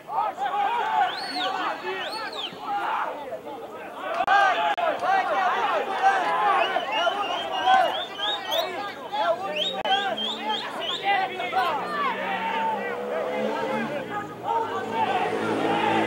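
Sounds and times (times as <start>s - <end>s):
people shouting and chattering: 0.0s - 16.0s.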